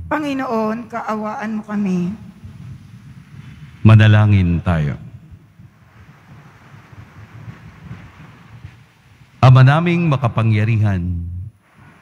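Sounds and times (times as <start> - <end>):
light hiss: 0.0 - 12.0
low room rumble: 0.0 - 12.0.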